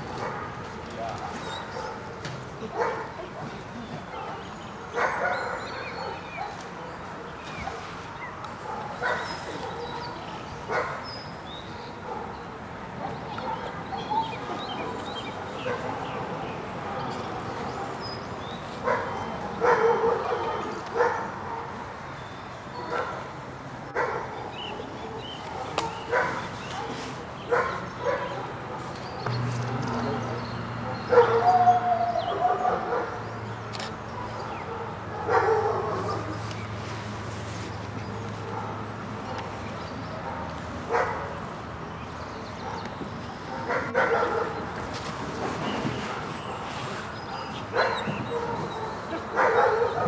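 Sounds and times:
dog barking: 0.1s - 2.1s, 2.7s - 3.2s, 4.1s - 7.0s, 8.6s - 11.1s, 12.0s - 12.4s, 13.0s - 13.8s, 15.6s - 16.0s, 18.8s - 21.8s, 22.8s - 23.3s, 23.9s - 28.9s, 30.8s - 33.2s, 34.2s - 36.4s, 38.1s - 39.5s, 40.2s - 41.3s, 43.5s - 44.7s, 47.3s - 50.0s.

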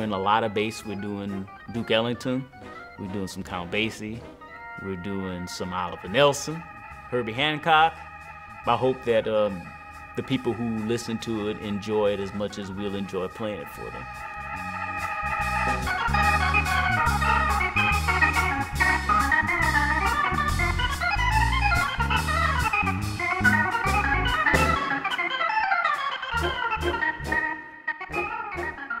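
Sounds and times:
jazz organ chords: 0.0s - 29.0s
walking bass line: 0.0s - 29.0s.

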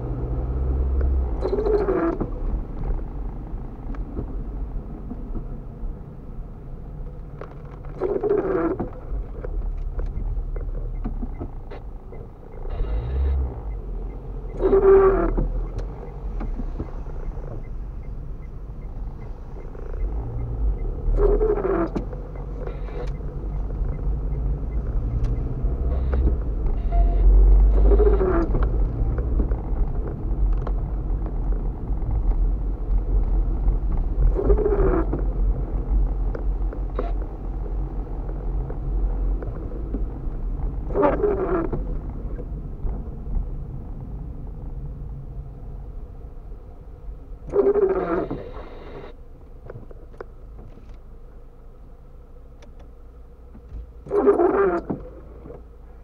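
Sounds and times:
car driving on wet road: 0.0s - 56.0s
wipers squealing on wet glass: 47.5s - 49.1s, 54.1s - 55.1s.

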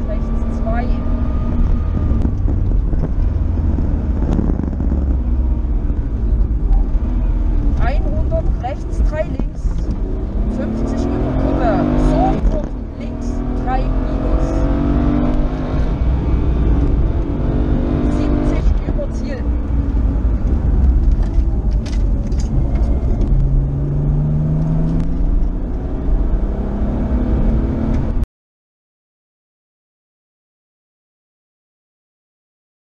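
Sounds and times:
rally car engine revving: 0.0s - 28.2s
road and tyre noise: 0.0s - 28.3s.

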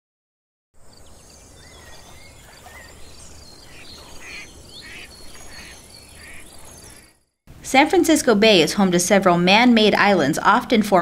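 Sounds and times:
insect-like high chirp: 0.8s - 7.2s
birds chirping and whistling: 0.9s - 7.2s.

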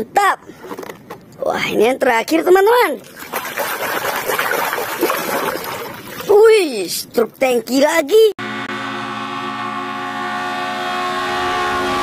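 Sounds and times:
water splashing and sloshing: 2.5s - 7.4s.

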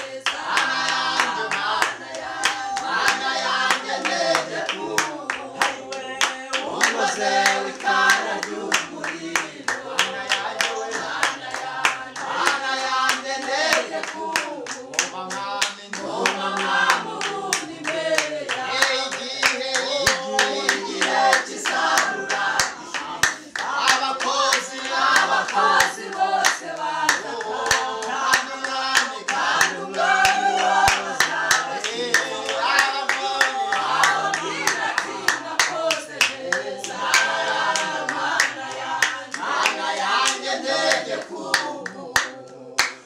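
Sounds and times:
group singing worship song: 0.0s - 43.0s
steady hand clapping: 0.0s - 43.0s.

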